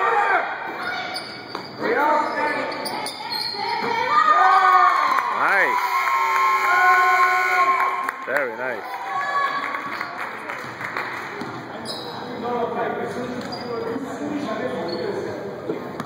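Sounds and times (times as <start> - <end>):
spectators yelling and cheering: 4.0 - 10.2.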